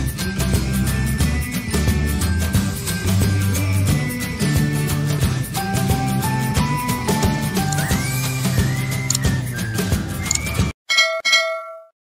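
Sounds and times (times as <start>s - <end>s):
background music: 0.0s - 10.8s
notification bell dings: 10.9s - 11.9s.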